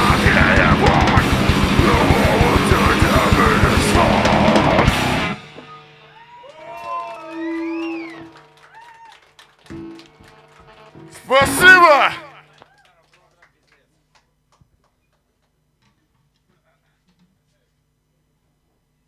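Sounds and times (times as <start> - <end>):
distorted electric guitars: 0.0 - 6.2, 9.6 - 12.6
drum kit: 0.0 - 6.2, 9.7 - 12.5.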